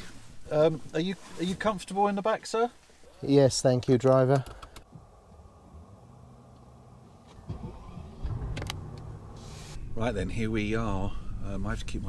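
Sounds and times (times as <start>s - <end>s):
car engine idling: 5.0s - 12.0s
car engine starting: 6.7s - 11.0s.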